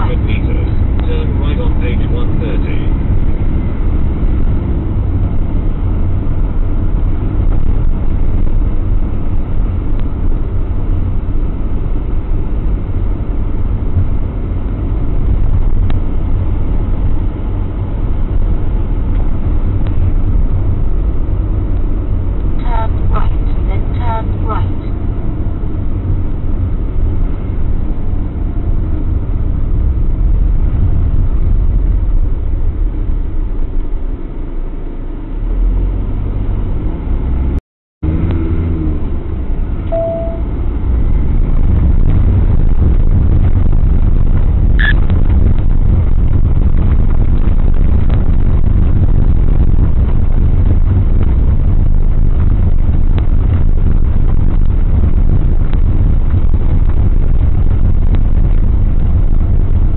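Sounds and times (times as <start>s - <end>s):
engine and road noise rumble: 0.0s - 59.9s
short high tones: 39.9s - 40.5s.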